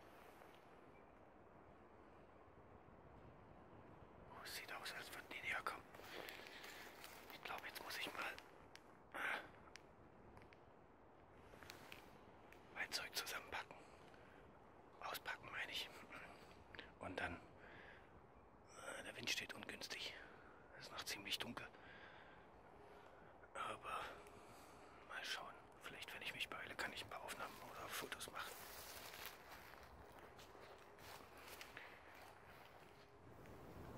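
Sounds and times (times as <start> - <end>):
person whispering: 4.3 - 9.8, 11.7 - 14.2, 14.9 - 17.6, 18.7 - 21.9, 22.9 - 33.2.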